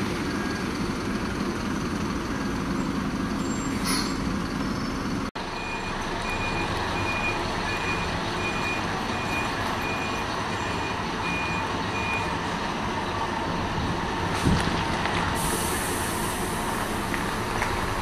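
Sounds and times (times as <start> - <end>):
diesel bus engines running: 0.0 - 18.0
air brake hiss: 3.7 - 4.2, 15.4 - 16.9
reversing alarm beeping: 5.4 - 12.4.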